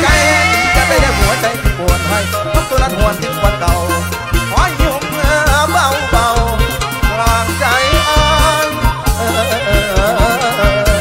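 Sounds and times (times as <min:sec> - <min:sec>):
bass: 0:00.0 - 0:11.0
live band music: 0:00.0 - 0:11.0
sliding lead melody: 0:00.0 - 0:11.0.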